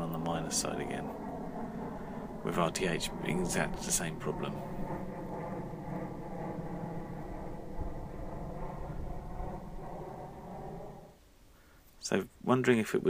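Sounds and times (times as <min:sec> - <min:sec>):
electric motor and propeller buzzing: 0:00.0 - 0:11.2
low rumble: 0:00.0 - 0:11.2.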